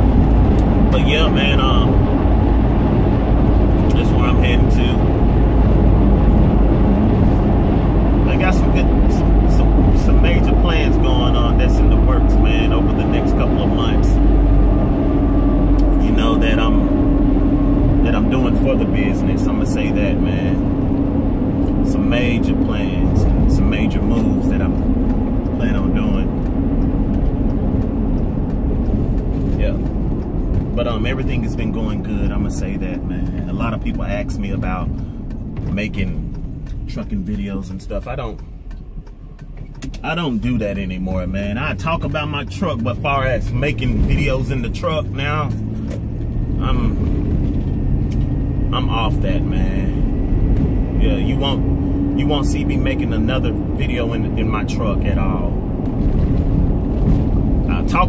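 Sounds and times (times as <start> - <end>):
car road and engine rumble: 0.0 - 58.0
man talking: 0.9 - 2.0, 3.9 - 5.1, 8.2 - 14.2, 15.8 - 16.9, 18.0 - 20.6, 21.8 - 24.8, 25.6 - 26.3, 29.6 - 29.9, 30.8 - 35.0, 35.7 - 36.3, 36.9 - 38.4, 39.8 - 45.6, 46.6 - 47.2, 48.7 - 50.0, 51.0 - 51.6, 52.2 - 55.6, 57.7 - 58.0.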